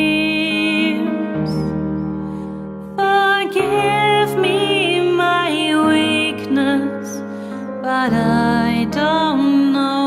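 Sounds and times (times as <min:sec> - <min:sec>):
woman singing: 0:00.0 - 0:01.9, 0:03.0 - 0:10.0.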